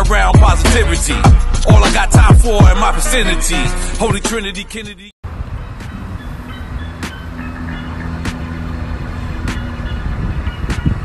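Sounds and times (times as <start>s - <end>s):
vehicle engine rumbling: 4.1s - 11.0s.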